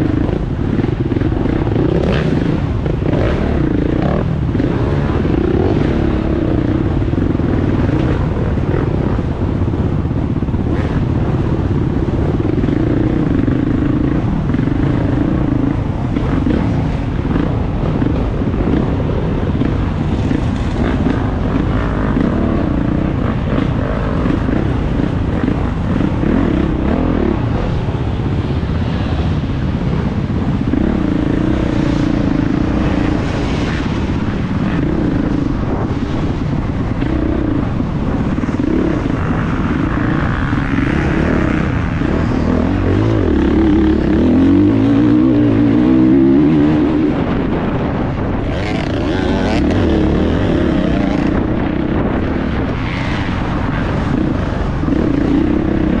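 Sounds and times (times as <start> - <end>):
off-road motorcycle engine revving: 0.0 - 56.0.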